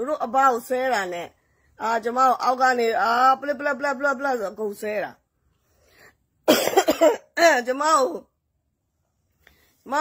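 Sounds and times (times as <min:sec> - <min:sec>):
woman talking: 0:00.0 - 0:05.2, 0:07.2 - 0:08.4
woman coughing: 0:06.4 - 0:07.5.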